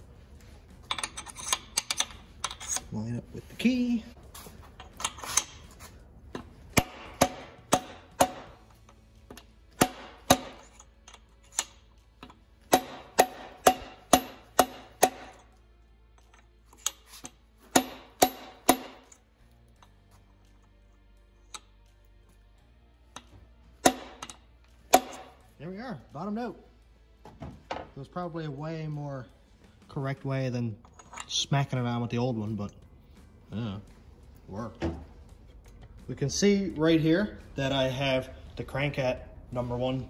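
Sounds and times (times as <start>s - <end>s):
metal-on-metal hammer strikes: 6.3s - 8.7s, 9.3s - 15.6s, 17.6s - 19.2s, 23.2s - 25.4s.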